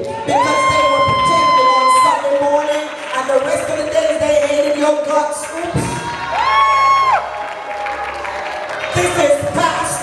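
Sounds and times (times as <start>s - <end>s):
congregation clapping: 0.0s - 10.0s.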